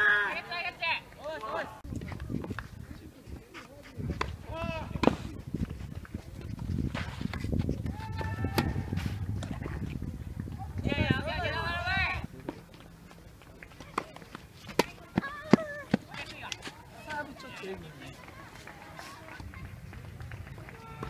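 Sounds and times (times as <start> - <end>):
tennis players shouting: 0.0 - 1.8, 7.8 - 9.3, 14.8 - 19.6, 20.4 - 21.0.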